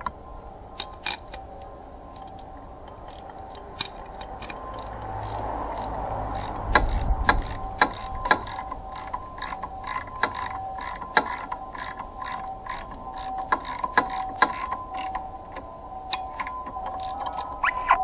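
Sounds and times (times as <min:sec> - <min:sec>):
ratchet wrench clicking: 0:00.8 - 0:01.4, 0:03.0 - 0:15.2, 0:16.1 - 0:17.6.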